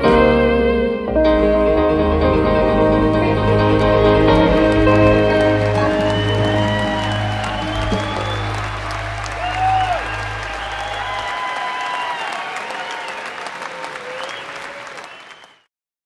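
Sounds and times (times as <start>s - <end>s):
audience applauding: 3.2s - 15.7s.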